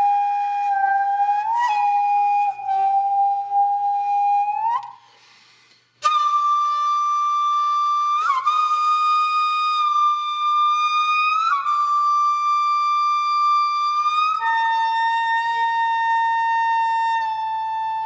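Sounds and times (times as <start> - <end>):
solo flute playing: 0.0 - 5.2, 6.0 - 18.0.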